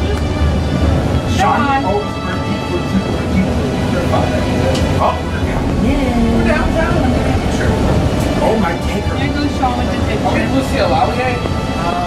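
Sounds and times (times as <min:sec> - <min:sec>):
passengers chattering: 0:00.0 - 0:12.0
train running rumble: 0:00.0 - 0:12.0.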